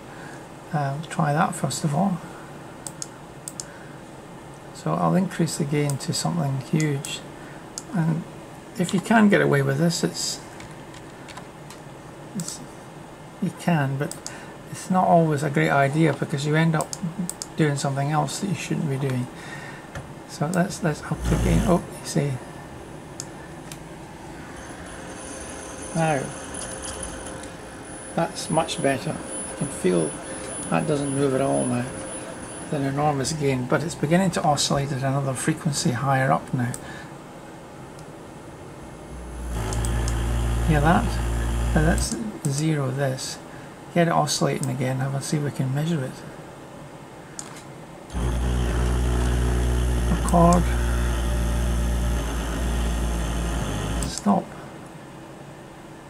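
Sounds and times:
small clicks: 2.8s - 3.7s, 39.6s - 40.3s, 47.4s - 51.0s
faint high whine: 20.3s - 36.8s, 39.0s - 43.4s, 48.1s - 54.7s
motor hum: 21.1s - 21.8s, 24.2s - 32.8s, 39.0s - 42.1s, 48.1s - 54.2s.

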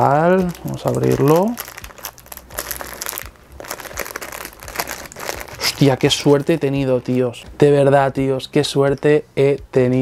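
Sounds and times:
plastic bag crinkling: 0.0s - 7.4s.

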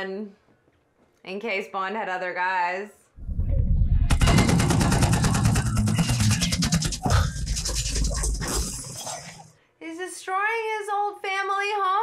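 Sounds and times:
heavy low rumble: 3.2s - 8.4s
automatic gunfire: 4.1s - 6.2s.

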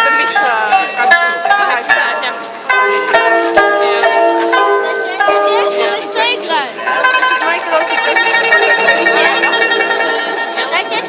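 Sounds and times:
plucked zither and lute: 0.0s - 11.0s.

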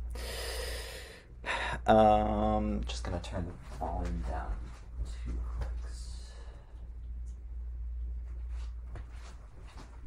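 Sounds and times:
man breathing: 0.0s - 1.9s, 6.0s - 7.0s
low hum: 0.0s - 10.0s
man speaking: 1.9s - 4.7s.

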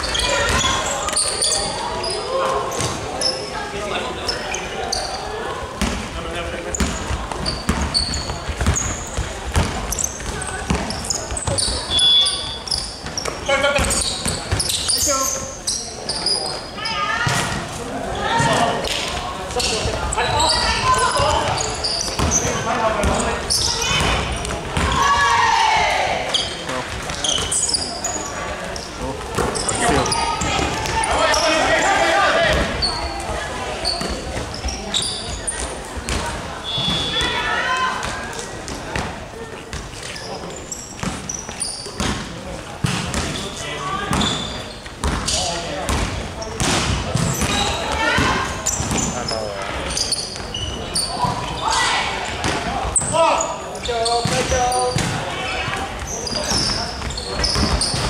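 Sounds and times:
players calling out: 6.5s - 38.9s.

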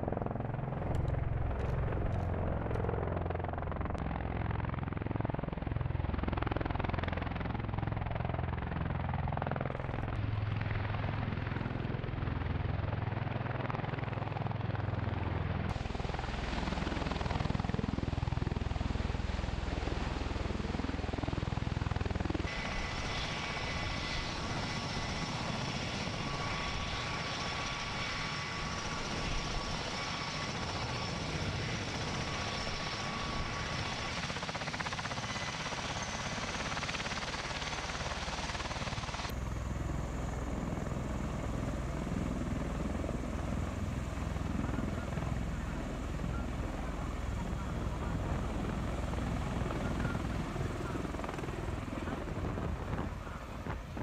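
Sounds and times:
aircraft rotor and engine noise: 0.0s - 54.0s
high turbine whine: 15.7s - 54.0s.

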